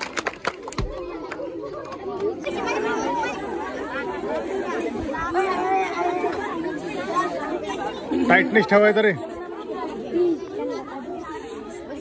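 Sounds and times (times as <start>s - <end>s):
children chattering: 0.0s - 12.0s.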